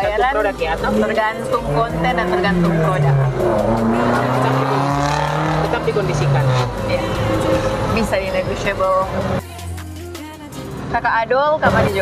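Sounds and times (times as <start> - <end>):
vehicle engine passing: 0.0 - 9.4.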